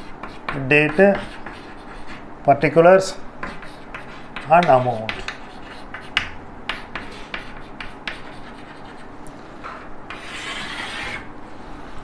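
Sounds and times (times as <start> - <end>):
chalk scraping on blackboard: 0.0 - 2.2, 3.4 - 11.3
chalk tapping and scratching: 0.0 - 2.2, 3.4 - 11.3.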